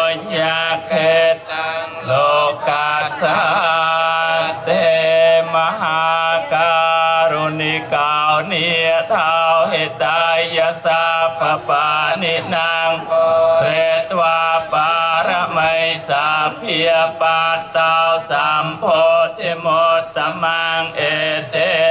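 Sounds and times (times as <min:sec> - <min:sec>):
monks chanting in unison: 0:00.0 - 0:21.9.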